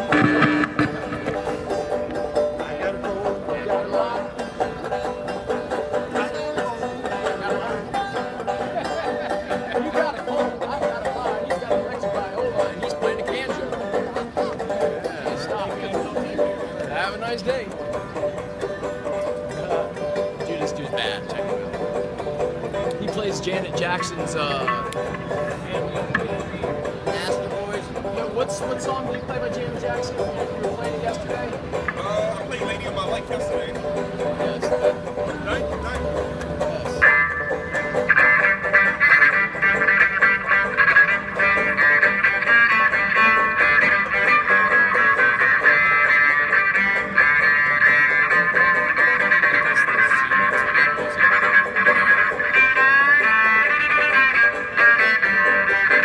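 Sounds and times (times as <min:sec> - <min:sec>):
electric bowed string melody: 0:00.0 - 0:56.0.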